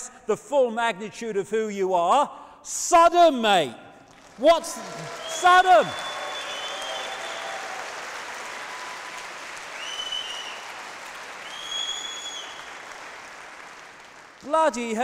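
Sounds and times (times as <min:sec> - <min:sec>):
audience applauding: 0:04.1 - 0:15.0.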